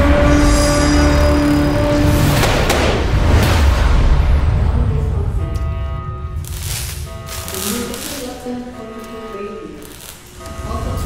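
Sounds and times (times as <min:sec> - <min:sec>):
sustained chord: 0:00.0 - 0:03.3, 0:04.2 - 0:11.0
heavy hit: 0:00.0 - 0:07.6
deep rumbling booms: 0:00.1 - 0:07.6.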